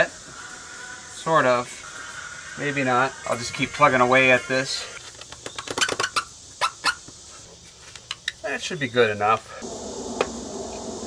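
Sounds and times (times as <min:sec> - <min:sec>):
paper towel scrubbing a wall: 0:00.0 - 0:03.1.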